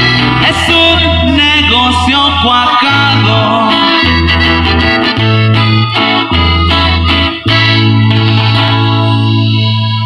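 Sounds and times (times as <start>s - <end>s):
accordion and guitar band chord: 0.0s - 10.0s
low bass note: 0.0s - 10.0s.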